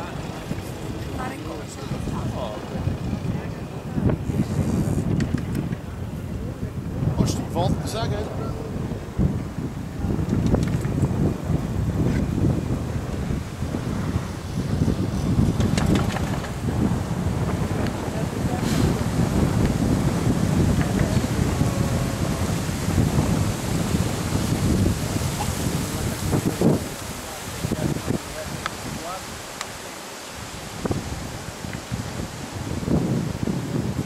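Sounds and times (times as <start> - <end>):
wind buffeting microphone: 0.0 - 34.0.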